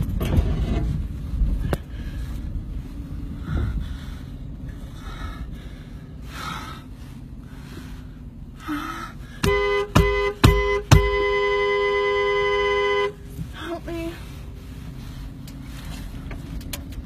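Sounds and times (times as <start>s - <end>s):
car driving rumble: 0.0s - 17.0s
car horn honking: 9.4s - 13.3s.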